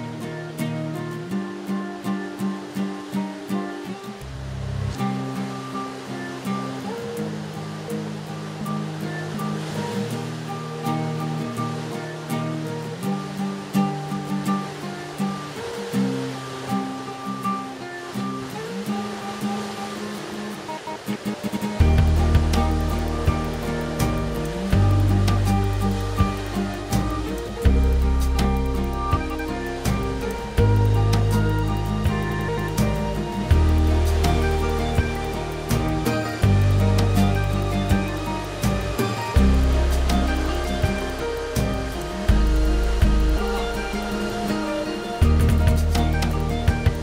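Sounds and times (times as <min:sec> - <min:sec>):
background music of held notes: 0:00.0 - 0:47.0
strong bass line: 0:21.8 - 0:26.5, 0:27.6 - 0:44.2.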